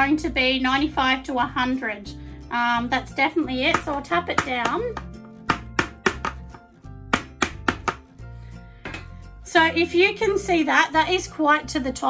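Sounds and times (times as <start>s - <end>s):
background music: 0.0s - 12.0s
plastic jar knocking on hard surface: 3.7s - 8.1s.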